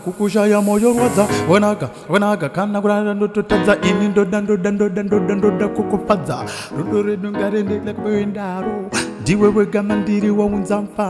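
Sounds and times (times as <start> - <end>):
fog machine hissing: 0.0 - 1.9
instrumental keyboard music: 3.5 - 11.0.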